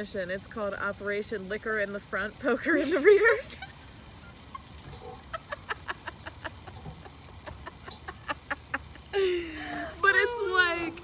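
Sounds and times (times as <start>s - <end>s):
women's breathy laughter: 5.3s - 10.0s.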